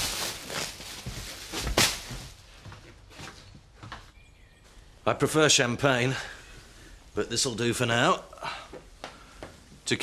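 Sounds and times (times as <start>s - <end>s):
plastic bag rustling and crinkling: 0.0s - 2.7s.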